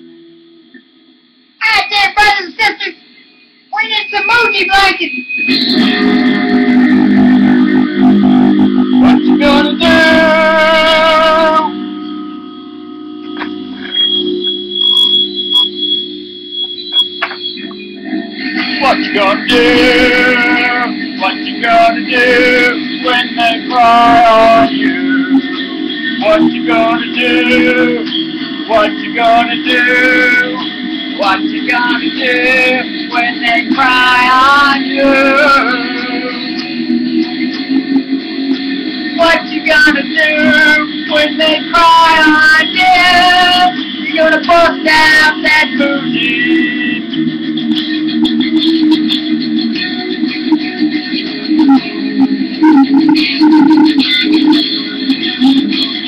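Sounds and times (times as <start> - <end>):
electric guitar long wavering notes: 5.3 - 49.1, 51.2 - 54.6.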